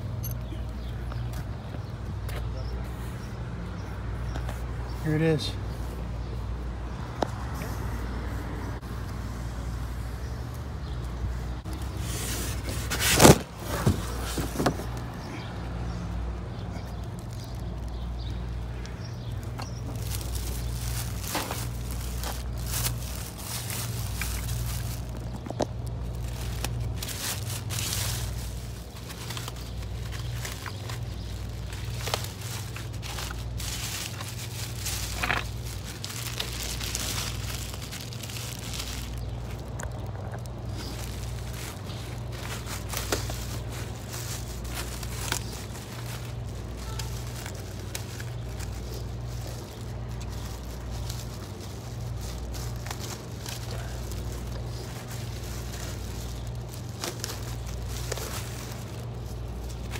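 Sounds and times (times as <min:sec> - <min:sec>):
plastic wrapping crinkling: 0:16.8 - 0:59.9.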